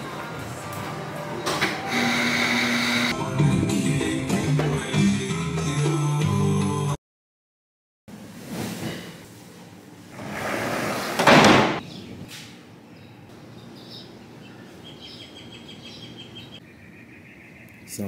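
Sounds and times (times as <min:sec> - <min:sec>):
sliding glass door opening: 0:10.1 - 0:11.8
birds chirping faintly: 0:11.8 - 0:18.0.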